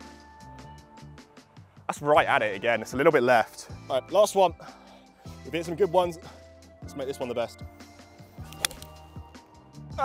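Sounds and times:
background music: 0.0s - 10.0s
golf club striking ball: 8.4s - 9.0s.

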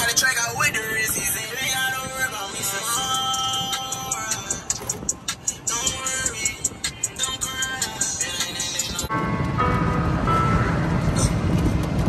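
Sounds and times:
wind and road rumble: 0.0s - 12.0s.

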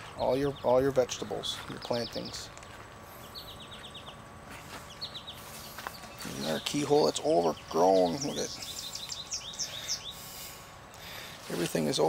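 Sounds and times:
faint outdoor hiss: 0.0s - 12.0s
small birds chirping: 0.0s - 12.0s.

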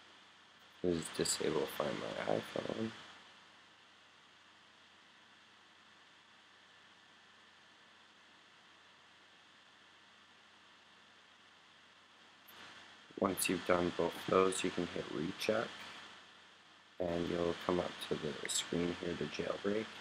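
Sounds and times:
faint microphone hiss: 0.0s - 20.0s.

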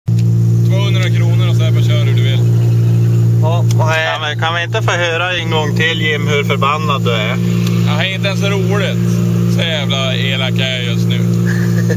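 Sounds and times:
car engine drone in cabin: 0.1s - 11.9s
voices talking: 0.6s - 11.9s.

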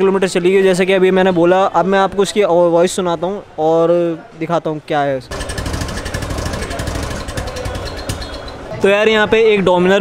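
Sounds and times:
motorcycle engine idling: 5.3s - 8.6s.

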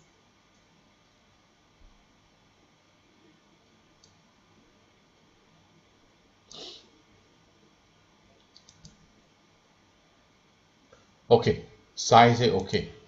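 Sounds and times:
quick clicks: 8.4s - 9.0s.

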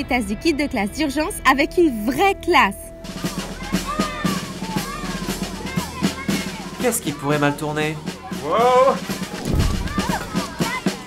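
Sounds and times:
background music with drum beat: 0.2s - 11.0s.

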